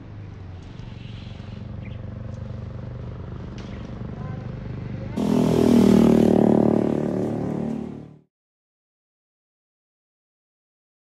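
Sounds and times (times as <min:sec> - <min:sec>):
vehicle engine running: 0:00.0 - 0:08.2
loud engine: 0:03.0 - 0:08.3
voices: 0:03.6 - 0:08.0.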